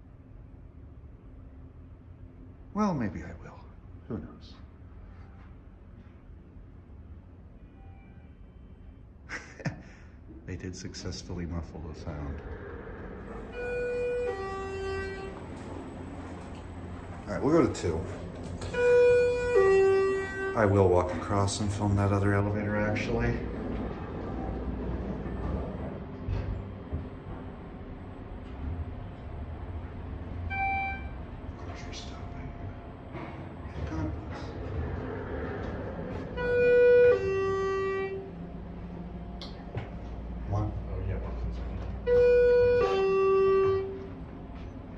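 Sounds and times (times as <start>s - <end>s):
elevator car rumble: 0.0s - 44.9s
elevator chime: 13.4s - 17.8s, 18.6s - 20.9s, 30.5s - 31.4s.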